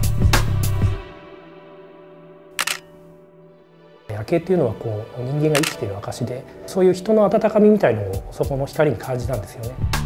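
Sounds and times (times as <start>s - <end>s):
quiet background music: 0.8s - 10.0s
camera shutter click: 2.6s - 2.9s, 5.5s - 5.8s.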